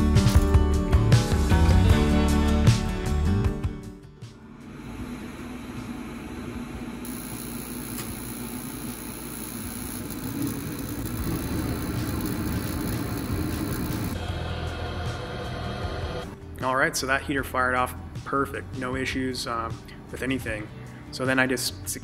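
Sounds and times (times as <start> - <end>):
gas heater blower whirring: 4.5 - 16.3.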